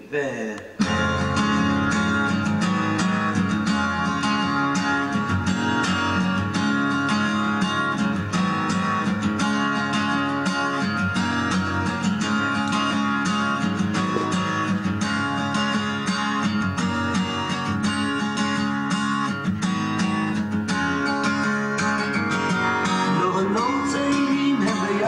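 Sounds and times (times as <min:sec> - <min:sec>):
acoustic guitar strumming: 0:00.7 - 0:25.0.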